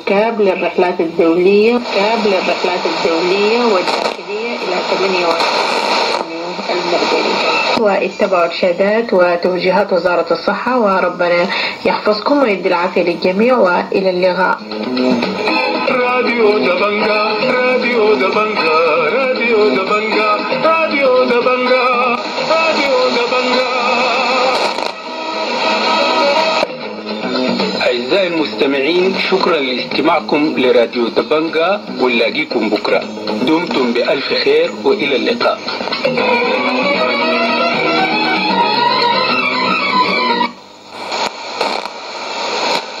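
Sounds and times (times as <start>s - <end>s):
radio music with held tones: 0.0s - 43.0s
sharp static crackles: 0.0s - 43.0s.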